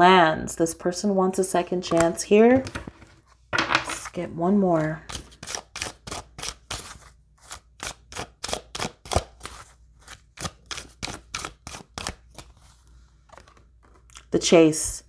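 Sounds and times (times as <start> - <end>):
cards being shuffled: 13.3 - 14.3.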